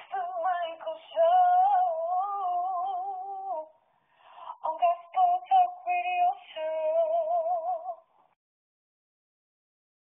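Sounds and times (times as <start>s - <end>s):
high voice singing unaccompanied: 0.0s - 3.8s, 4.5s - 8.1s.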